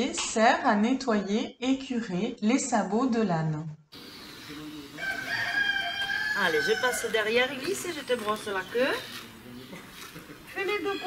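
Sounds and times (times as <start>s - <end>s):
rooster crowing: 4.1s - 8.0s.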